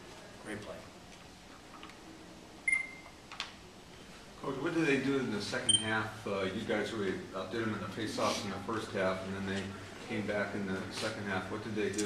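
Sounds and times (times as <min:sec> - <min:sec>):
high electronic beep: 0:02.7 - 0:03.0.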